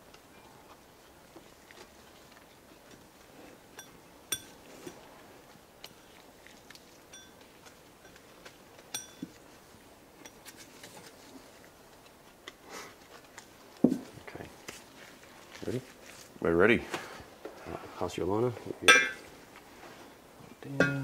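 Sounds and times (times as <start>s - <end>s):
metal clinking with ring: 3.7s - 5.0s, 7.1s - 7.4s, 8.9s - 9.4s.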